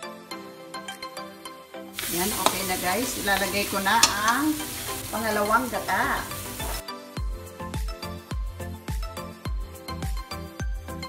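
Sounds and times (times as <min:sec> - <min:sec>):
background music with steady beat: 0:00.0 - 0:11.0
food sizzling in a wok: 0:02.0 - 0:06.8.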